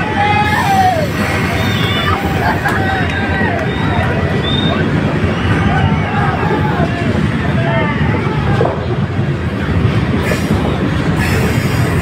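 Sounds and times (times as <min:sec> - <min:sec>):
freight train wheels on rails: 0:00.0 - 0:12.0.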